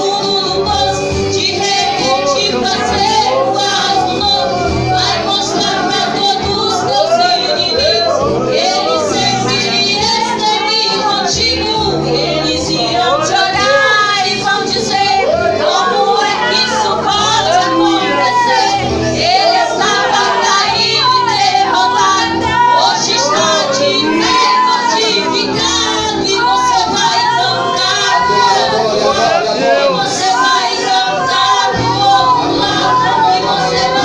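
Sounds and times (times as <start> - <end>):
held chords: 0.0 - 34.0
high voice singing: 0.0 - 34.0
sustained accompaniment: 15.2 - 34.0.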